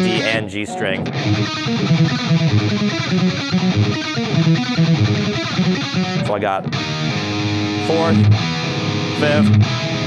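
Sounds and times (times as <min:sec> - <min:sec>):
distorted electric guitar metal riff: 0:00.0 - 0:10.0.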